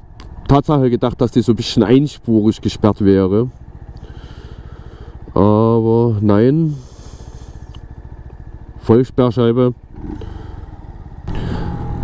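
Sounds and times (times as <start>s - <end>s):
motorcycle engine pulling away: 9.7s - 12.0s.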